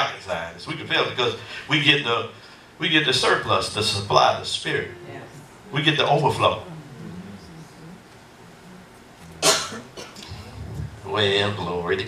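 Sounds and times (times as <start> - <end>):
faint low hum: 0.0 - 12.0
person coughing: 9.4 - 10.5.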